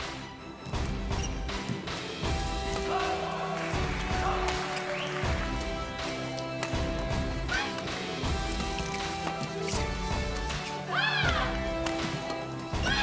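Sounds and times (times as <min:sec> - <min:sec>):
background music with low beat: 0:00.0 - 0:13.0.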